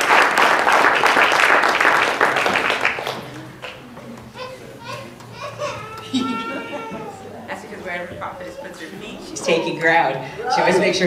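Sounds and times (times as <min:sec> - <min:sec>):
low voices: 0:03.1 - 0:11.0.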